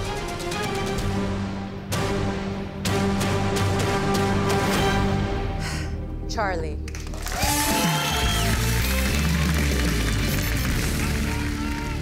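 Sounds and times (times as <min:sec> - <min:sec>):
audience applause and cheering: 0:06.9 - 0:12.0.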